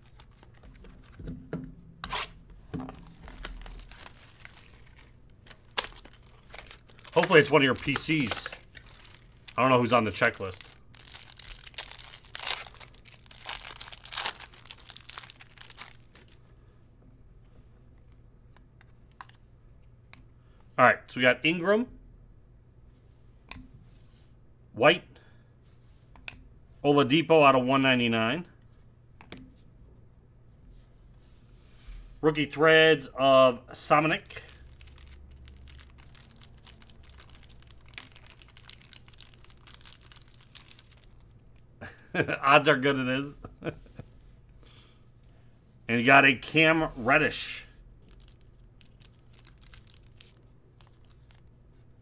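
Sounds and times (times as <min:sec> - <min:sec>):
cards rustling and clicking: 0:00.0 - 0:01.3, 0:02.0 - 0:16.4, 0:34.2 - 0:41.2
low steady hum: 0:00.0 - 0:52.0.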